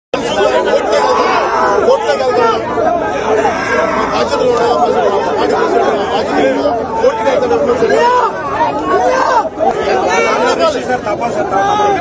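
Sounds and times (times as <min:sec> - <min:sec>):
men chattering: 0:00.2 - 0:08.3.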